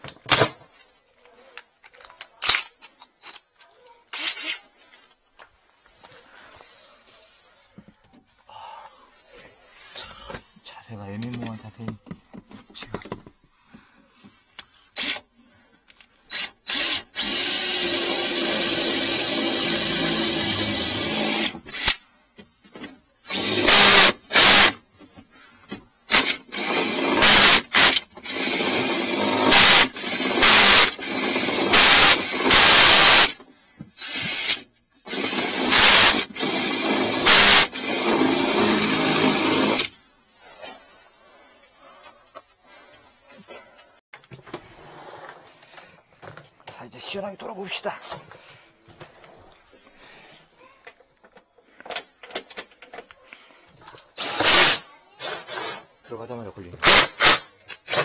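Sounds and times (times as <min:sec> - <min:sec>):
cordless drill whining: 0:16.3 - 0:22.0, 0:23.3 - 0:24.8, 0:26.1 - 0:33.4, 0:34.0 - 0:39.9, 0:54.2 - 0:55.8.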